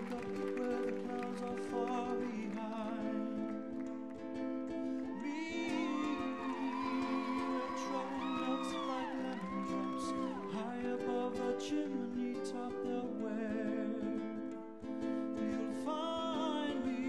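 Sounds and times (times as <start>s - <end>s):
person singing: 0.0s - 17.0s.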